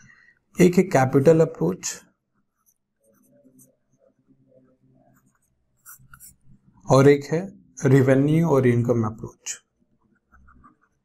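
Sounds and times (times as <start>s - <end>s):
stylus scratching on pen tablet: 2.3s - 6.7s, 10.0s - 11.0s.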